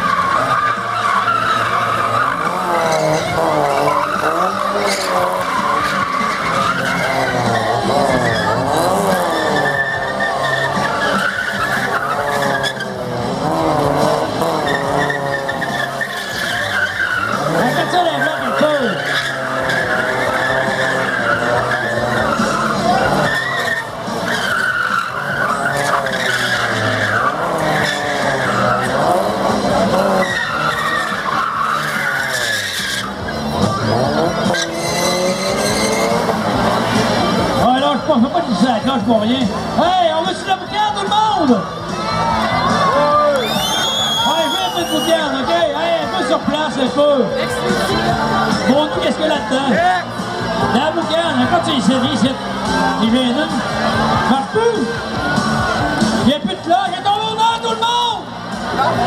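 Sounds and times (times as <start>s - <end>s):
car engine revving hard: 0.0s - 41.0s
tyres skidding and squealing: 0.0s - 59.0s.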